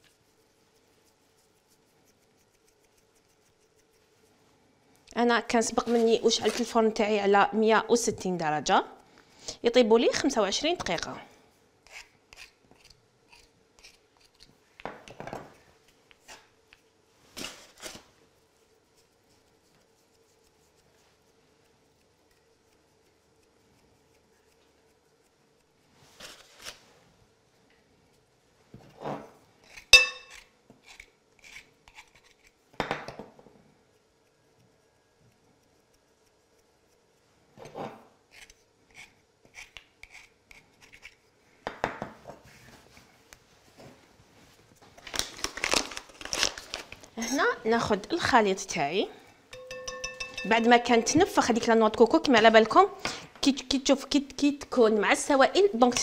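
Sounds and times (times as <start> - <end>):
sharp metallic clink: 30.0 - 30.4, 49.5 - 50.8
metal tins knocking on wood: 49.6 - 51.2.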